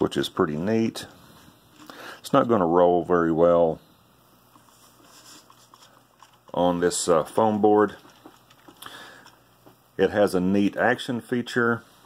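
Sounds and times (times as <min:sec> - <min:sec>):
plastic toy clicks and rubs: 0:04.5 - 0:09.5.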